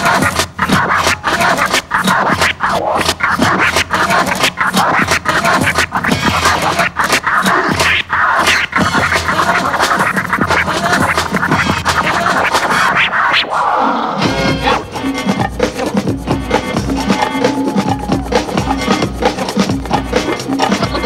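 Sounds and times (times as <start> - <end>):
music: 0.0 - 21.0
vinyl record scratching: 0.0 - 21.0.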